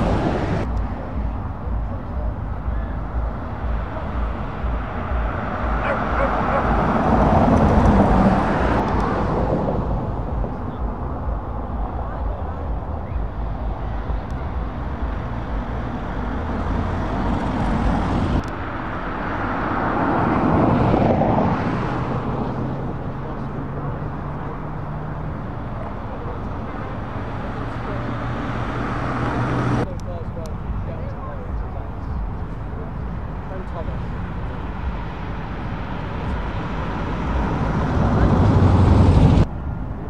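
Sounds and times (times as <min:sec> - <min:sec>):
vans driving past: 0:00.0 - 0:40.0.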